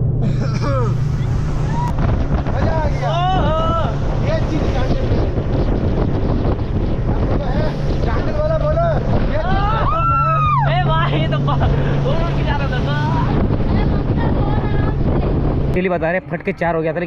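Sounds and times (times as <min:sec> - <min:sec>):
water rushing past hull: 0:00.0 - 0:16.9
speedboat engine drone: 0:00.0 - 0:17.0
wind buffeting microphone: 0:00.0 - 0:17.0.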